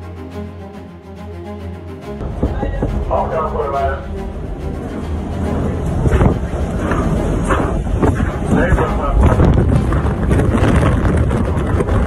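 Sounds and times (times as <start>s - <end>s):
storm wind buffeting microphone: 2.2s - 12.0s.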